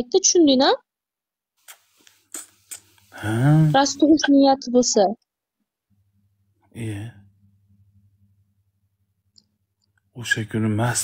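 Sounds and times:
faint low hum: 2.6s - 4.8s, 6.0s - 11.0s.

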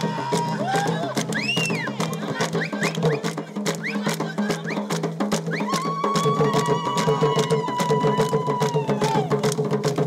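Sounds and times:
hand drum beating: 0.0s - 10.0s.

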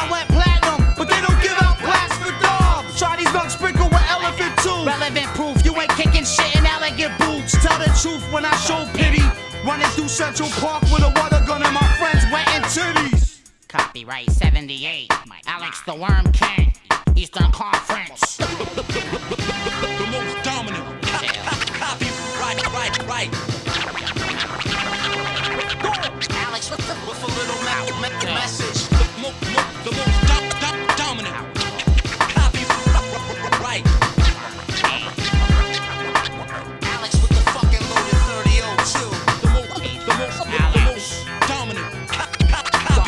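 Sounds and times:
hip-hop beat with bass line: 0.0s - 43.0s
turntable scratching: 0.0s - 43.0s
heavy kick drums: 0.3s - 1.8s, 2.4s - 2.9s, 3.8s - 4.2s, 5.6s - 6.8s, 7.6s - 8.1s, 9.0s - 9.4s, 10.8s - 12.4s, 14.3s - 14.6s, 16.1s - 17.6s, 28.8s - 29.1s, 30.0s - 30.5s, 31.9s - 33.1s, 33.7s - 34.4s, 35.3s - 35.7s, 37.1s - 38.7s, 39.4s - 39.8s, 40.5s - 41.0s.

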